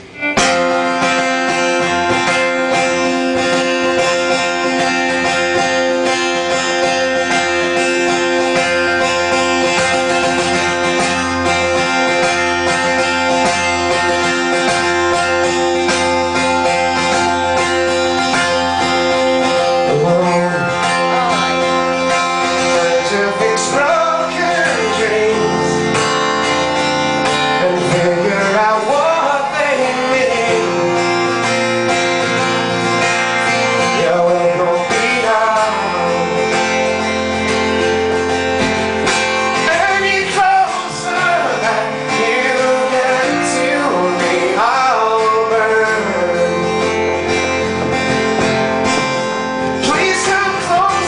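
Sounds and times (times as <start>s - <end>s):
strummed acoustic guitar: 0.0s - 51.0s
person singing: 16.9s - 26.4s, 27.4s - 31.6s, 33.6s - 37.4s, 39.5s - 51.0s.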